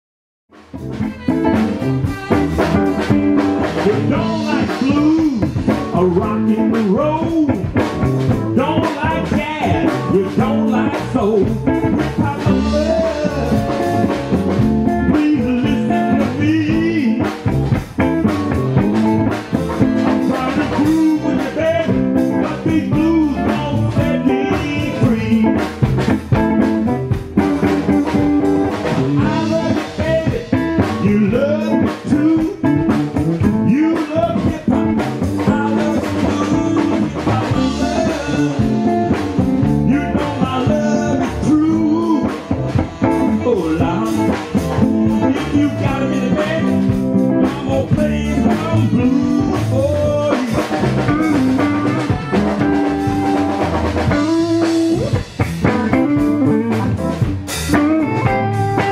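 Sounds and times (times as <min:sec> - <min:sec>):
electric blues band playing live: 0:00.5 - 0:58.9
electric guitar: 0:00.5 - 0:58.9.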